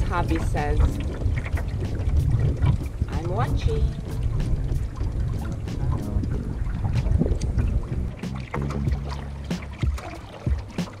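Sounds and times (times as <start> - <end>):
wind rumble on microphone: 0.0 - 10.7
music: 0.0 - 11.0
paddle strokes in water: 0.0 - 11.0.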